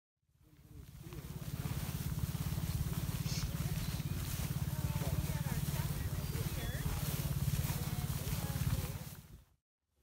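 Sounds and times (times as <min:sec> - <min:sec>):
people talking: 0:00.4 - 0:09.3
low rumble: 0:00.7 - 0:09.4.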